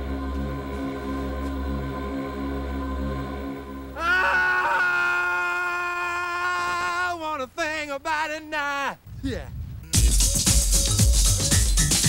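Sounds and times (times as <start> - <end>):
person screaming: 4.0 - 7.2.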